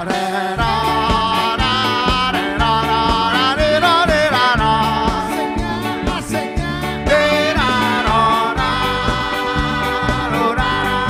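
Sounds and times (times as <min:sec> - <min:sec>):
drum beat: 0:00.0 - 0:11.0
live band music: 0:00.0 - 0:11.0
man singing: 0:00.0 - 0:11.0.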